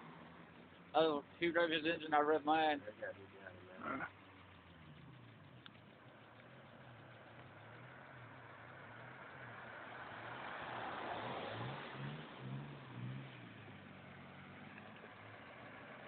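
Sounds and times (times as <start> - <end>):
car engine running: 0.0 - 10.4, 12.0 - 16.0.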